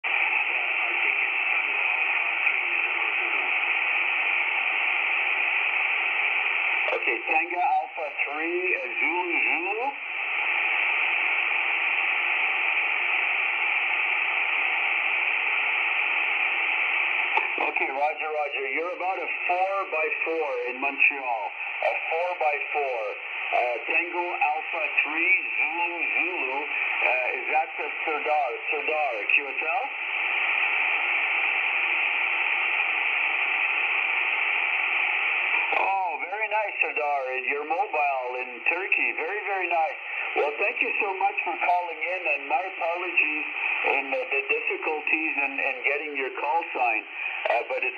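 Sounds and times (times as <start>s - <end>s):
shortwave radio band noise hiss: 0.0s - 47.9s.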